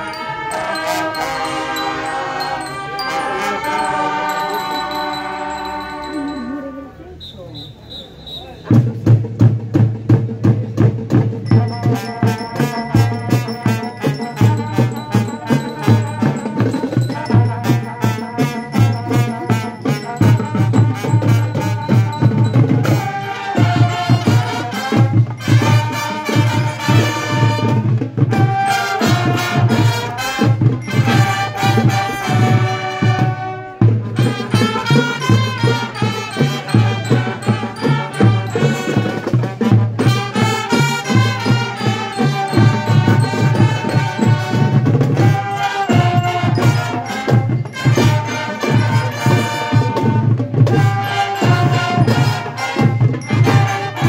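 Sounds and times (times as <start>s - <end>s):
brass and mallet bells melody: 0.0s - 7.6s, 9.8s - 54.0s
marching band playing: 0.0s - 54.0s
bass and snare drums: 7.2s - 54.0s.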